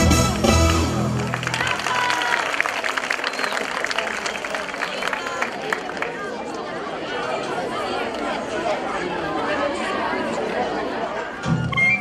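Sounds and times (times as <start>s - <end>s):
folk dance music: 0.0s - 3.4s
crowd chatter: 0.0s - 12.0s.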